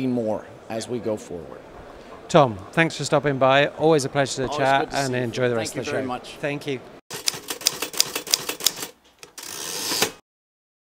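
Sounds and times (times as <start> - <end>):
typewriter keys clacking: 7.1 - 9.0.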